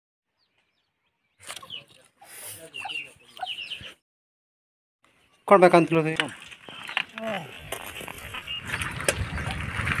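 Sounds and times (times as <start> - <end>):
small birds chirping: 0.3 - 4.0, 5.1 - 9.8
chickens clucking: 1.6 - 3.9.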